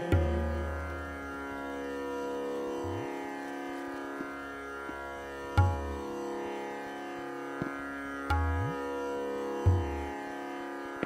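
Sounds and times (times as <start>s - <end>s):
steady string drone: 0.0s - 11.0s
light tabla taps: 4.2s - 6.1s, 7.6s - 9.0s, 9.6s - 10.2s.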